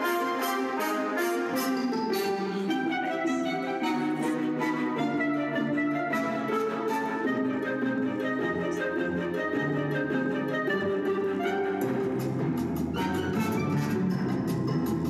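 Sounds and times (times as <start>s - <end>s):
orchestral music: 0.0s - 15.0s.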